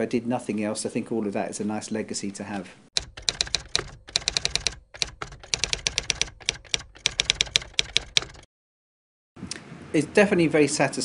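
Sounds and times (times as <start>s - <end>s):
rapid keyboard typing: 3.0s - 8.5s.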